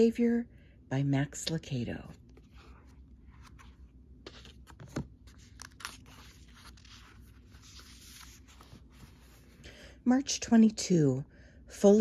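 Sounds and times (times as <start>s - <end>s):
book pages turning: 2.1s - 9.6s.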